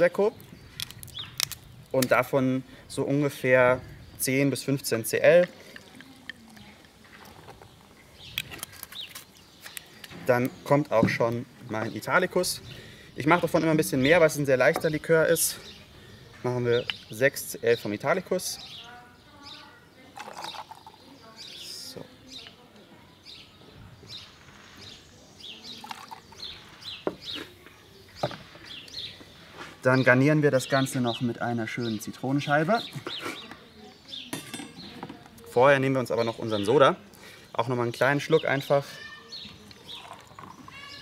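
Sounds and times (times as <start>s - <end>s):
songbirds chirping: 0.0s - 41.0s
sparkling wine fizzing: 5.5s - 7.3s
ice clicking in glass: 25.8s - 26.3s.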